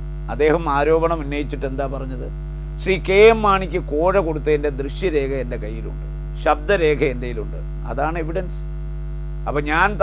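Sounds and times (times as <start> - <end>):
low electrical hum: 0.0 - 10.0
man's voice: 9.5 - 10.0.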